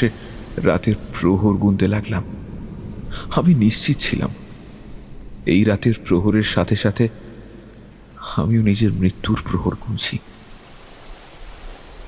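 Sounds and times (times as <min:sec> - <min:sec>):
man narrating: 0:00.0 - 0:02.4, 0:03.1 - 0:04.5, 0:05.4 - 0:07.4, 0:08.1 - 0:10.3
faint low rumble: 0:00.0 - 0:10.5
sea rushing: 0:00.0 - 0:12.0.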